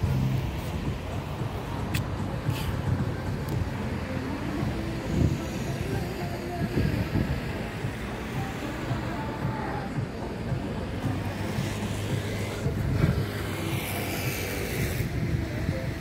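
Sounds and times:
faint indistinct voices: 0.0s - 16.0s
steady low rumble: 0.0s - 16.0s.

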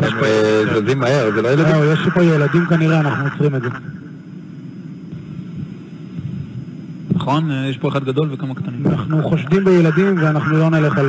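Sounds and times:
low rumble of aircraft: 0.0s - 11.0s.

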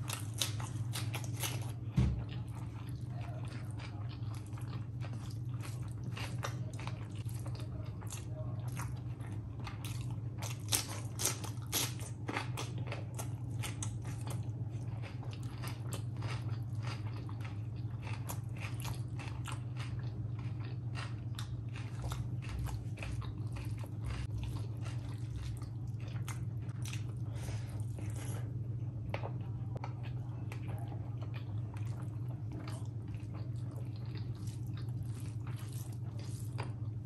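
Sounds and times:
chewing food: 0.0s - 37.0s
steady low hum: 0.0s - 37.0s.

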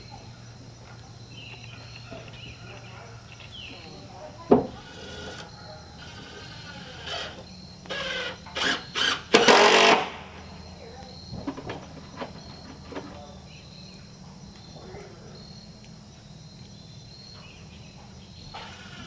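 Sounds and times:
cordless drill driving screws: 4.5s - 10.2s, 18.5s - 19.0s.

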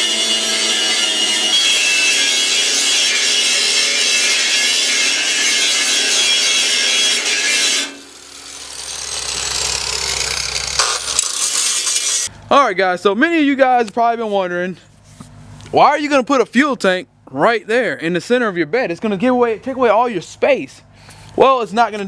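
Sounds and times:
angle grinder cutting steel: 0.0s - 12.3s.

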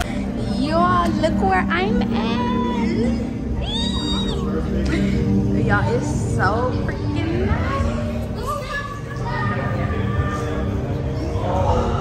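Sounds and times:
voices in a crowded room: 0.0s - 12.0s.

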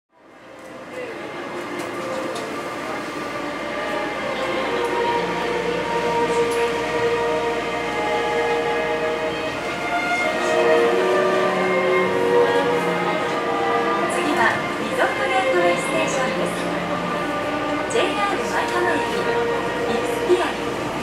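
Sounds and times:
monorail running: 0.1s - 21.0s
steady tones: 2.4s - 21.0s.

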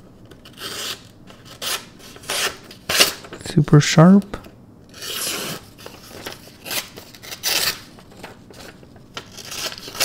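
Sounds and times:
knife slicing through paper: 5.0s - 7.9s.

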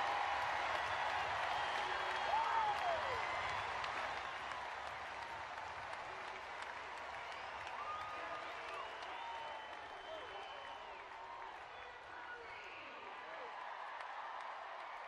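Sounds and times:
crowd applauding and cheering: 0.0s - 15.0s.

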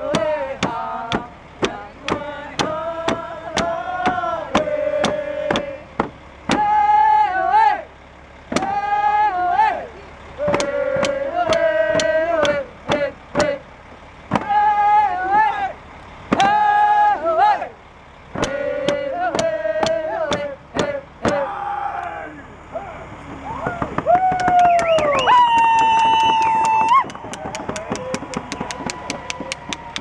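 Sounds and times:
woman singing: 0.0s - 4.7s.

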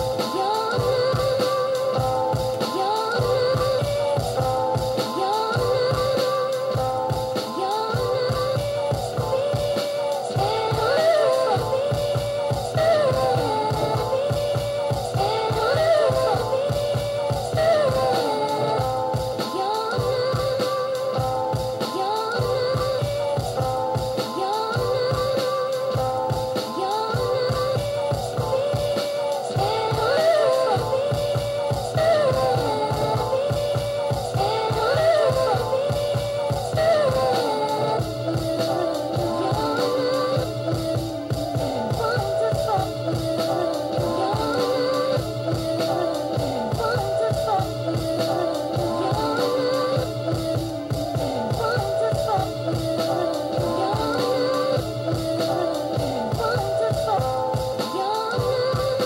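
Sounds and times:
hip-hop beat with soul sample: 0.0s - 59.0s
person singing: 0.0s - 59.0s
repeating drum pattern: 0.0s - 59.0s.

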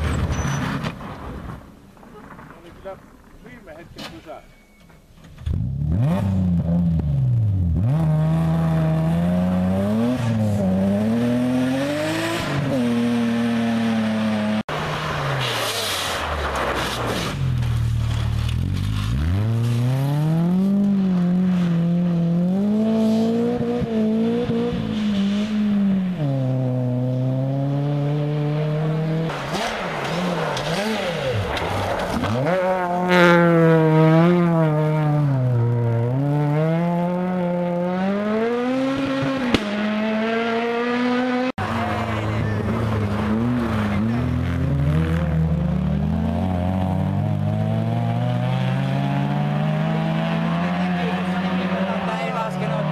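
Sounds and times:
rally car engines revving: 5.4s - 52.9s.

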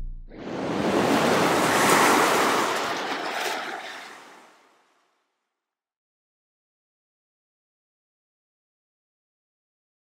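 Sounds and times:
rushing water splash: 0.4s - 5.0s.

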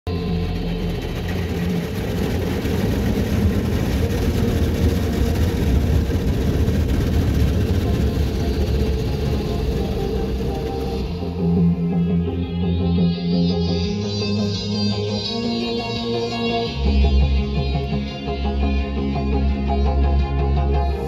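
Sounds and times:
low hum: 0.1s - 21.0s
water jets spraying on car: 0.7s - 11.1s.

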